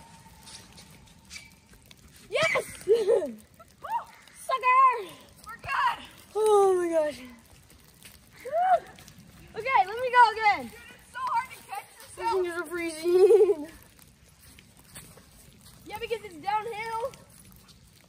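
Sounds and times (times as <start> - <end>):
young people shouting and whooping: 2.3 - 5.1, 8.4 - 9.1.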